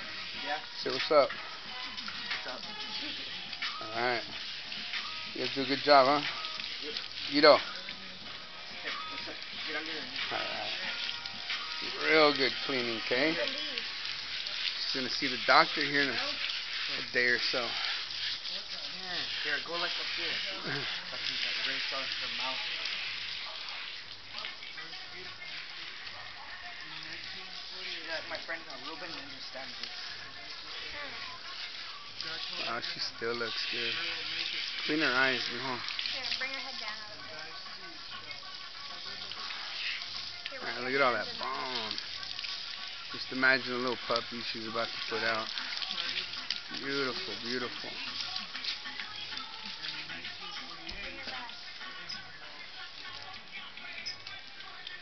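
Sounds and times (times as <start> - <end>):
background music: 0.0 - 55.0
hose nozzle spraying water: 0.0 - 55.0
quiet voices: 16.4 - 55.0.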